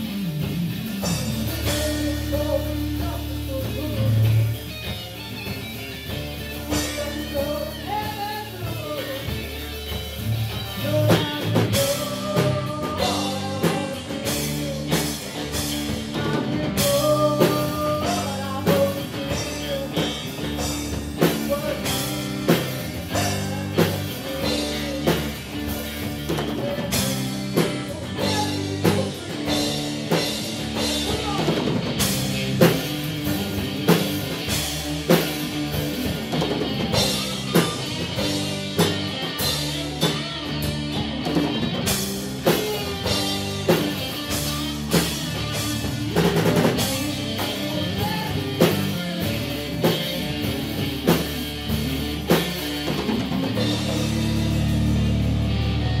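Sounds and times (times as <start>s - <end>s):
bass guitar: 0.0s - 56.0s
drum kit beat: 0.0s - 56.0s
electric and acoustic guitars: 0.0s - 56.0s.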